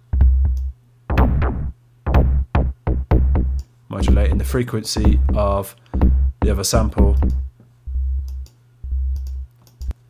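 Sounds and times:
synth kick drum: 0:00.0 - 0:09.4.

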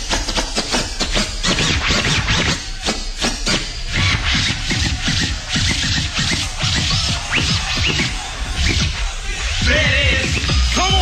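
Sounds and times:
vinyl record scratching: 0:01.0 - 0:11.0
hip hop beat: 0:01.9 - 0:11.0.

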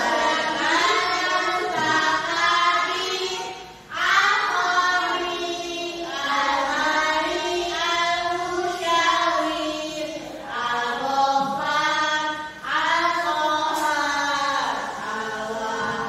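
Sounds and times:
young voices chanting in unison: 0:00.0 - 0:16.0.

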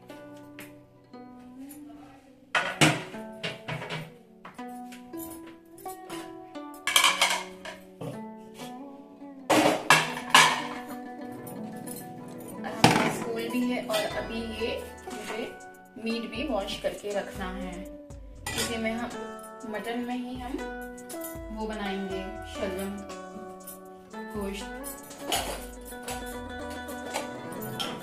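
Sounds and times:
background music: 0:00.0 - 0:28.0
steel plates and utensils clattering: 0:02.6 - 0:04.1, 0:05.9 - 0:07.8, 0:09.5 - 0:15.7, 0:18.5 - 0:20.1, 0:24.7 - 0:28.0.

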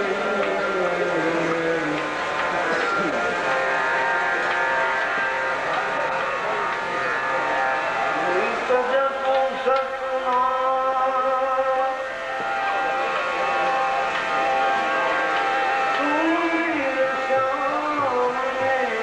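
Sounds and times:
man singing: 0:00.0 - 0:02.1, 0:08.2 - 0:12.1, 0:16.0 - 0:19.0
harmonium chords: 0:00.0 - 0:19.0.

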